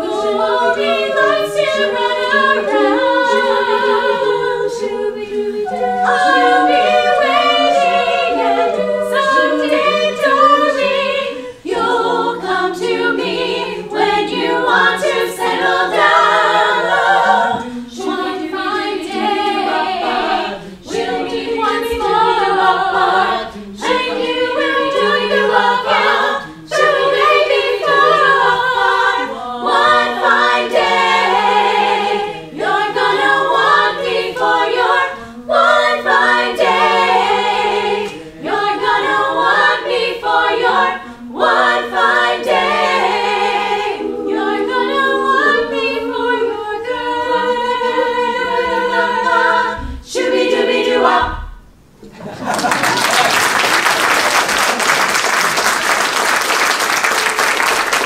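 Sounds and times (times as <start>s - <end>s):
women's choir singing a cappella: 0.0s - 54.2s.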